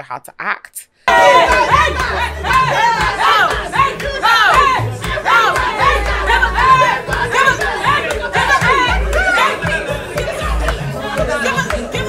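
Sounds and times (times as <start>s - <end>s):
loud music with heavy bass: 1.1s - 12.0s
party crowd chanting: 1.1s - 12.0s
shouted hey chants: 1.1s - 12.0s.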